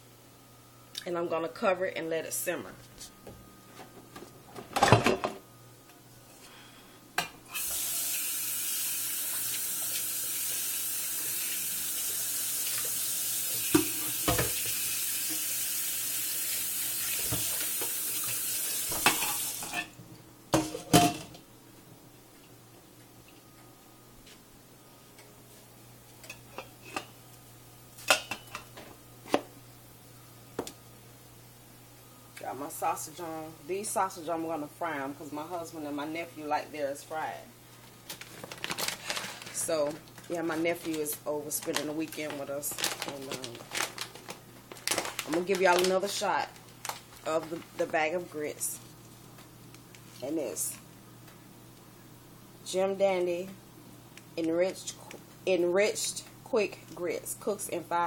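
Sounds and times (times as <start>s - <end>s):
kitchen tap running: 7.5s - 19.8s
pots and lid clattering: 20.6s - 21.4s.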